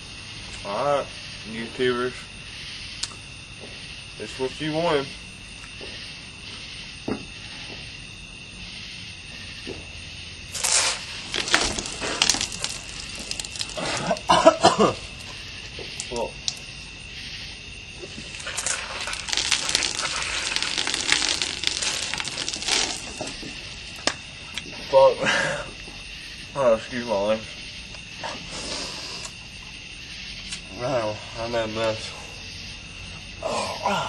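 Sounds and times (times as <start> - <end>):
foam spraying from mouth: 10.6 - 14.2, 18.3 - 23.3
man gulping and sputtering: 13.1 - 14.7.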